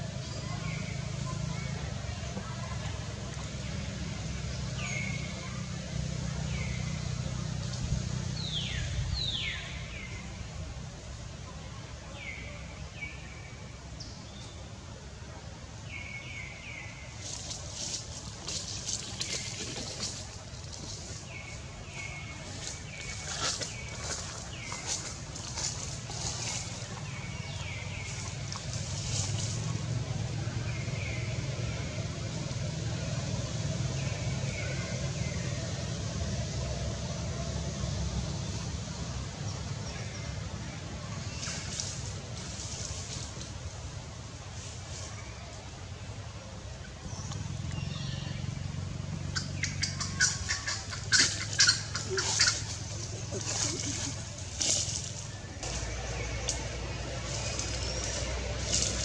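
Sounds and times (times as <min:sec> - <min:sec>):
low steady rumble: 0:00.0 - 0:59.0.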